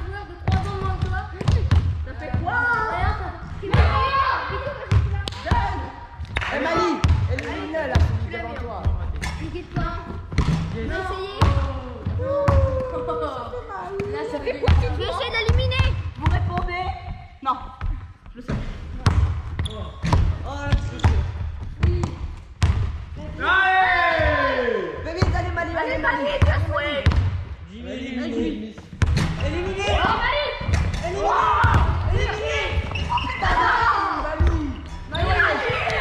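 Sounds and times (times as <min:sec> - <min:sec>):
children chattering and calling out: 0:00.0 - 0:06.0, 0:10.8 - 0:16.2, 0:29.6 - 0:34.4
basketballs bouncing on wooden floor: 0:00.1 - 0:13.0, 0:13.9 - 0:23.1, 0:25.1 - 0:27.4, 0:30.0 - 0:36.0.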